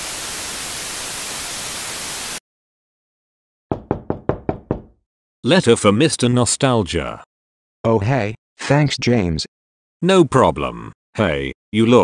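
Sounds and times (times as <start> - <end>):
knocks on a door: 3.7 - 5.0.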